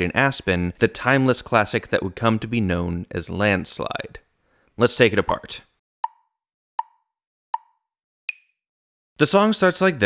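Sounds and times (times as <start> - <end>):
hollow plopping pops: 7.6 - 8.5.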